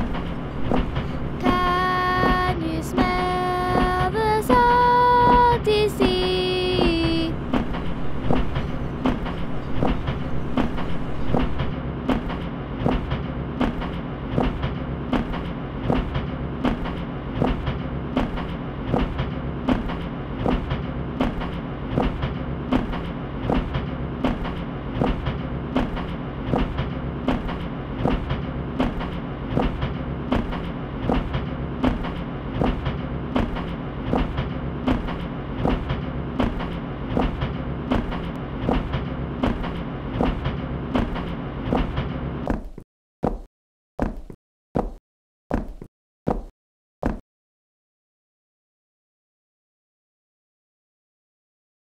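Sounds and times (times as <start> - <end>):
train rumble: 0.0 - 42.4
train wheels clicking on rails: 0.0 - 42.4.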